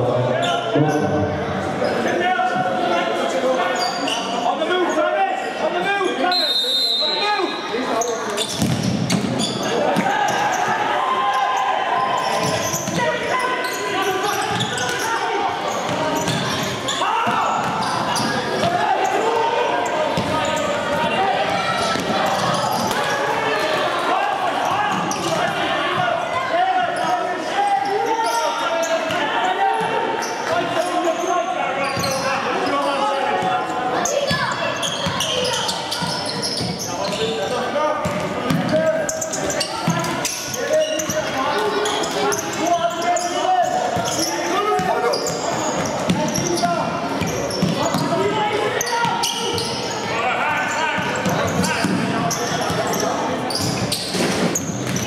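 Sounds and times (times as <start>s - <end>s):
players and spectators calling: 0.0s - 55.0s.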